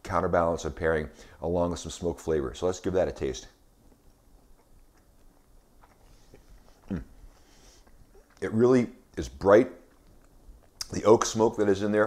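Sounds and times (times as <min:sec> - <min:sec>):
mouth chewing clicks: 0:03.8 - 0:11.2.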